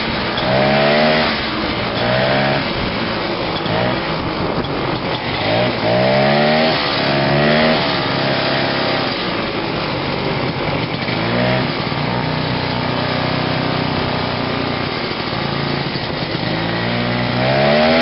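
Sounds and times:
snowmobile two-stroke engine revving: 0.0 - 18.0.

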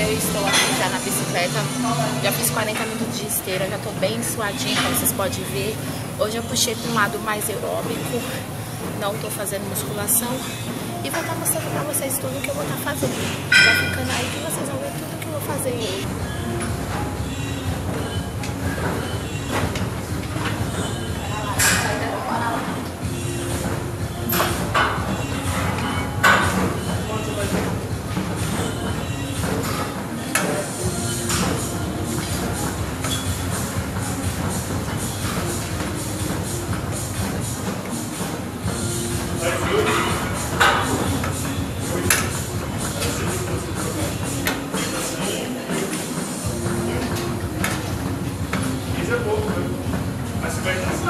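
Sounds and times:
exercise bike rumble and whir: 0.0 - 51.0
steady hum: 0.0 - 51.0.

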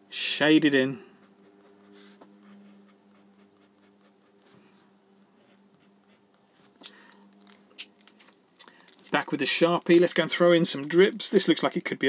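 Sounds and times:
low steady hum: 0.0 - 11.3
felt-tip pen scratching paper: 1.1 - 6.4.

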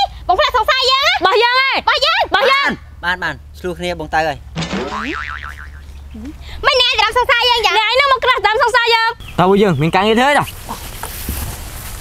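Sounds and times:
cartoon boing spring effect: 4.6 - 5.8.

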